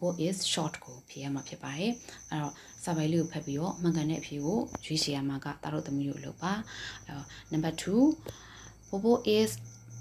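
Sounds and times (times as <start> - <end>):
high-pitched pulsing chirp: 1.2 - 10.0.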